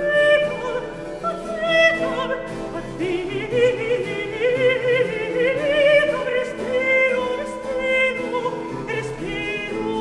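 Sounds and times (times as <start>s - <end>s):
countertenor singing with vibrato: 0.0s - 10.0s
small baroque ensemble: 0.0s - 10.0s.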